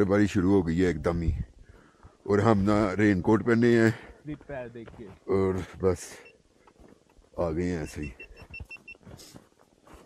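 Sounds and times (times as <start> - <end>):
footsteps crunching in snow: 4.4 - 5.9, 7.9 - 10.0
short high beeps: 7.8 - 9.0.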